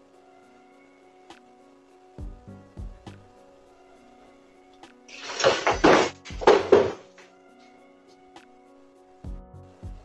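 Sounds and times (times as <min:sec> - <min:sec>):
background music: 0:00.0 - 0:10.0
wooden chair scraping floor: 0:05.1 - 0:07.3.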